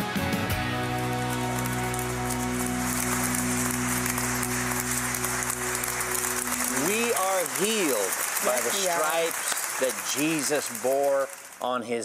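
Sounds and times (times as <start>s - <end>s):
audience applause: 0.4s - 12.0s.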